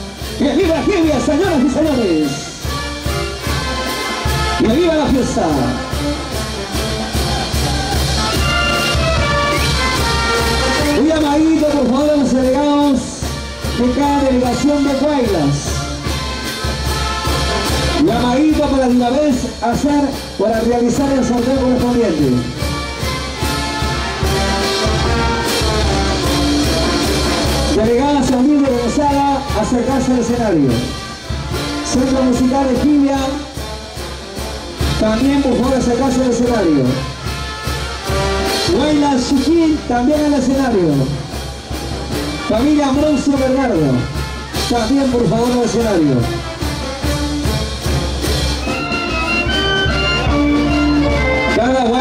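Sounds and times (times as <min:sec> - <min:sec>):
brass band playing: 0:00.0 - 0:52.0
steady drum beat: 0:00.0 - 0:52.0.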